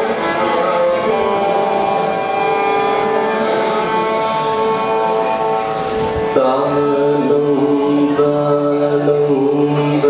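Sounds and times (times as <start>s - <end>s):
violin bowing long notes: 0.0s - 10.0s.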